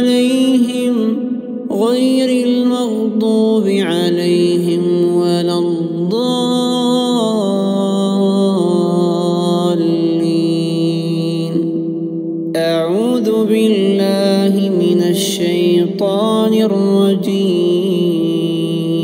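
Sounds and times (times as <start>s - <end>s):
man chanting recitation: 0.0s - 11.9s, 12.5s - 19.0s.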